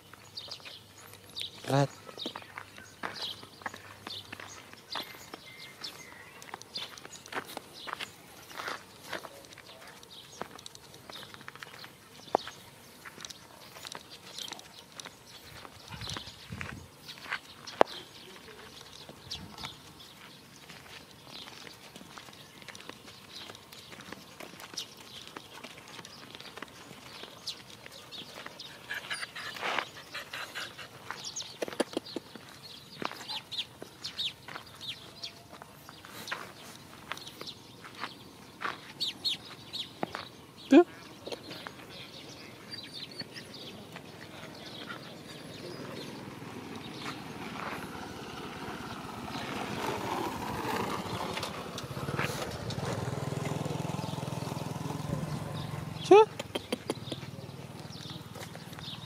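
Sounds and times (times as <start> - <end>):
birds chirping: 0.0 - 59.0
footsteps on stony dirt road: 0.0 - 59.0.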